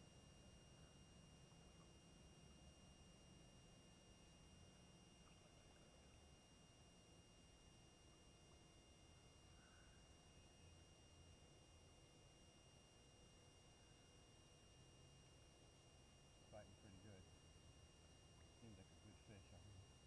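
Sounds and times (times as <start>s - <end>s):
faint background hiss: 0.0s - 20.0s.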